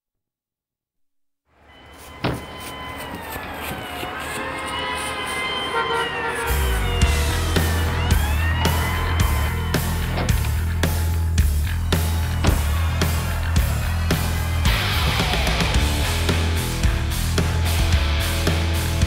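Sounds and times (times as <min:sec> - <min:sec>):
sirens wailing: 0:01.5 - 0:17.4
street traffic: 0:01.5 - 0:19.0
rock song drum and bass pulse: 0:06.6 - 0:19.0
sudden hit: 0:12.4 - 0:13.1.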